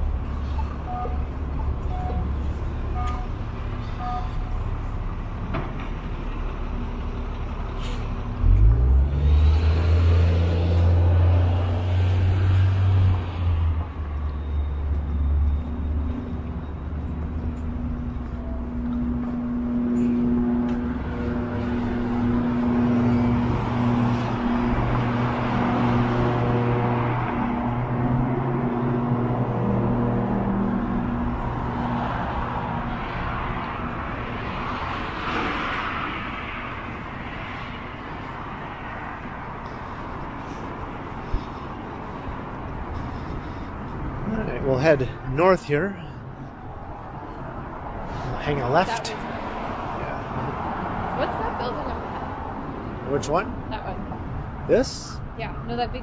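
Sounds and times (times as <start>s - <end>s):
road traffic: 0.0s - 56.0s.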